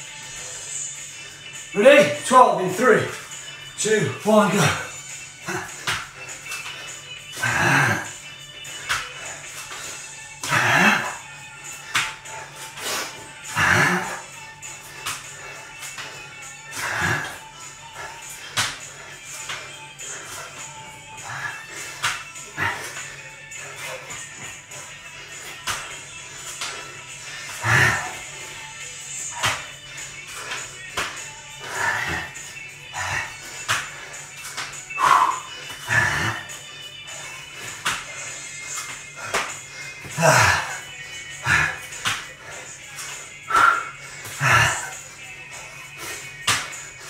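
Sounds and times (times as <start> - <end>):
background music: 0.0 - 47.0
hard exhaled breaths: 4.7 - 47.0
hands and feet slapping floor: 5.5 - 7.0, 8.7 - 10.7, 11.7 - 28.4, 29.0 - 40.8, 41.4 - 47.0.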